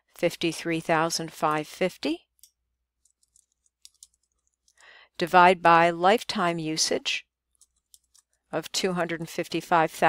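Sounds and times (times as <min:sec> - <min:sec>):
faint keyboard keystrokes: 0:02.4 - 0:04.9.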